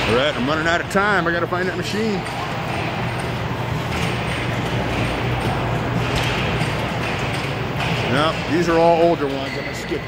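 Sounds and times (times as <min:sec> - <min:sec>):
pinball machine noise: 0:00.0 - 0:10.0.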